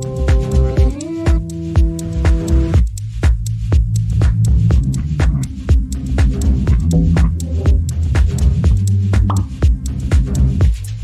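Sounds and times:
steady drum beat: 0.0 - 11.0
sustained low bass note: 0.1 - 10.6.

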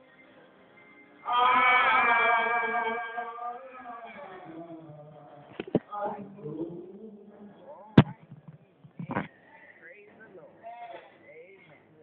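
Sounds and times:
congregation voices: 1.2 - 11.9.

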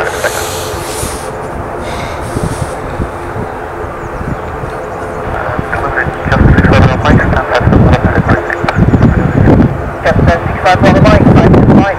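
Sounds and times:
turboprop engines and propellers: 0.0 - 11.9.

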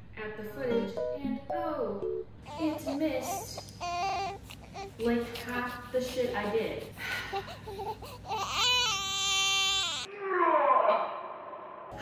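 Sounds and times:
loud crying wail: 8.3 - 10.1.

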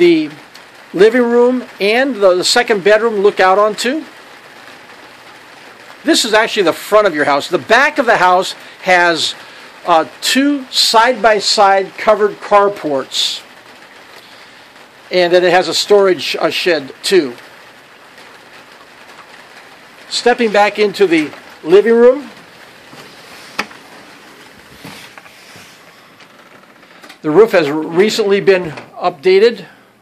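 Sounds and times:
steady rain falling: 0.0 - 30.0.

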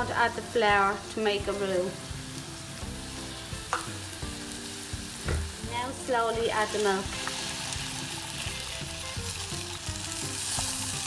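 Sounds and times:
food sizzling in butter: 0.0 - 11.0.

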